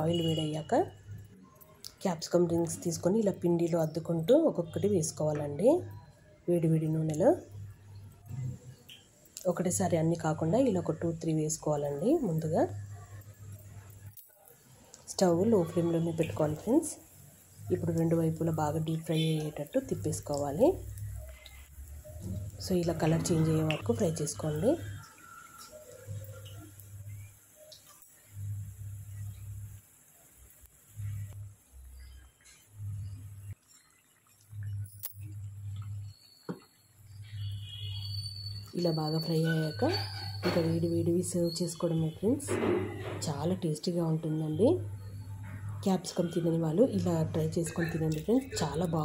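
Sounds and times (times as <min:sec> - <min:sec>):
hot oil bubbling and sizzling: 0:00.0 - 0:49.0
light hiss: 0:23.5 - 0:38.0
low hum: 0:30.9 - 0:33.6
person speaking: 0:46.8 - 0:49.0.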